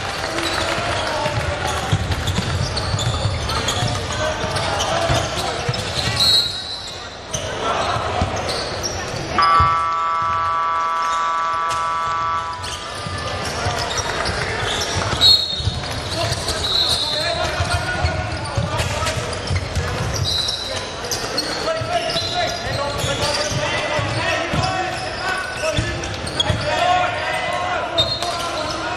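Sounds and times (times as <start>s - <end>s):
players' voices: 0.0s - 28.9s
sneakers squeaking: 0.4s - 28.9s
scoreboard horn: 9.4s - 13.0s.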